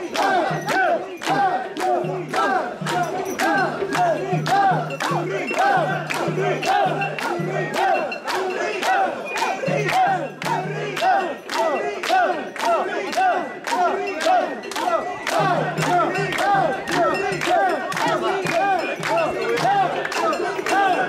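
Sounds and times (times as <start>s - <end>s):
crowd chanting in unison: 0.0s - 21.0s
hands clapping in time: 0.0s - 21.0s.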